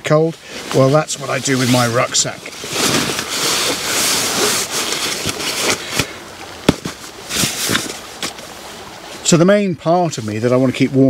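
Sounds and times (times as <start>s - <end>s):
fabric rustling: 0.4s - 9.2s.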